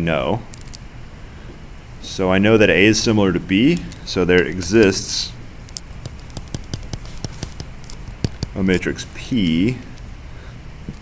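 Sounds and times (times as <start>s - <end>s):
stylus tapping on tablet screen: 5.7s - 8.9s.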